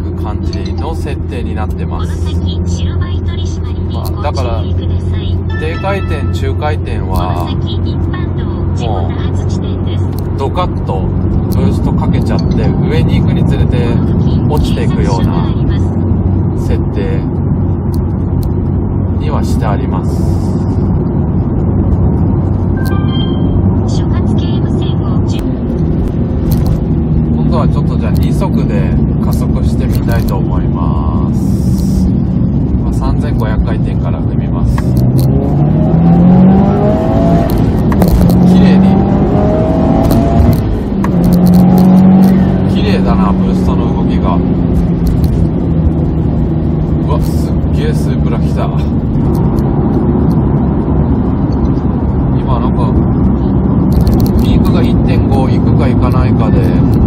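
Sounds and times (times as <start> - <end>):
turbocharged car engine accelerating: 0.0 - 57.0.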